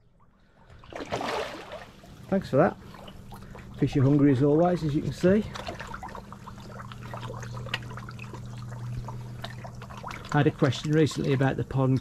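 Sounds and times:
steady low hum: 0.0s - 12.0s
water splashing and trickling: 0.4s - 12.0s.

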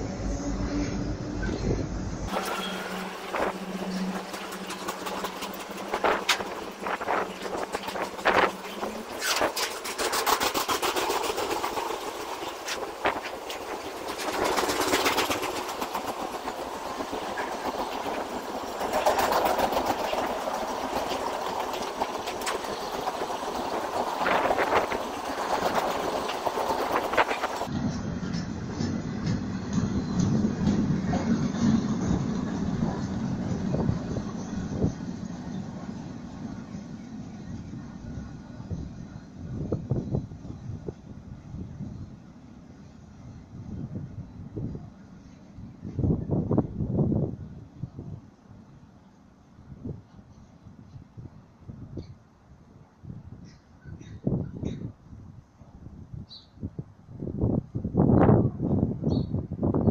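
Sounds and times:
train wheels clattering over rail joints: 2.3s - 35.6s.

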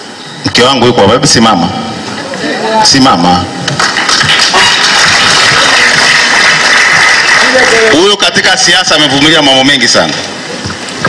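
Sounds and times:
audience applauding: 3.7s - 8.4s.

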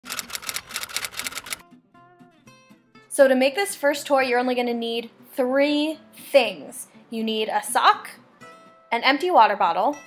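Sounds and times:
typewriter key clacks: 0.1s - 1.6s.

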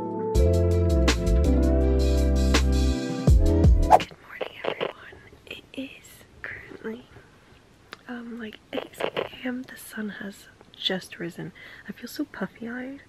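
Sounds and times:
woman whispering: 4.0s - 7.2s.

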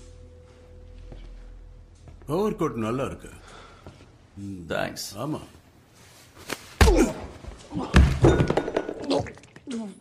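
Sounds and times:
faint film score: 0.0s - 8.2s.

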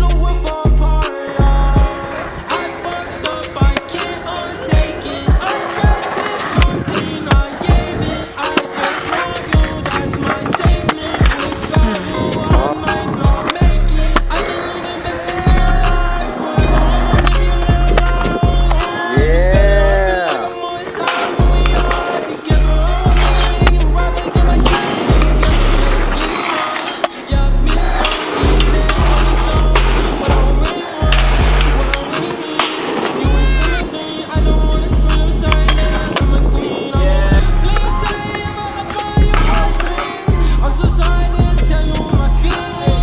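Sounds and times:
heavy bass beat: 0.0s - 2.0s, 10.7s - 14.6s, 15.3s - 20.3s, 21.4s - 26.3s, 27.3s - 32.2s, 33.3s - 38.2s, 39.2s - 43.0s
background music: 0.0s - 43.0s
skateboard wheels rolling on concrete: 0.0s - 43.0s
skateboard popping and landing: 1.1s - 19.1s, 20.3s - 36.6s.

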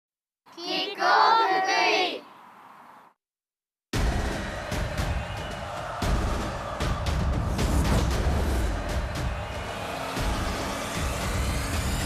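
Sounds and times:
sharp percussive hits: 4.0s - 12.0s
theme music with heavy bass: 4.0s - 12.0s.

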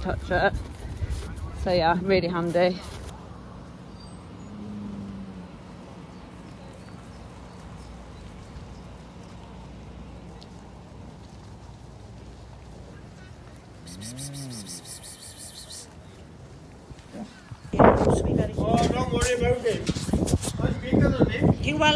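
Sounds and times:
cattle moving through grass: 5.6s - 17.5s
cow mooing: 13.8s - 15.5s.

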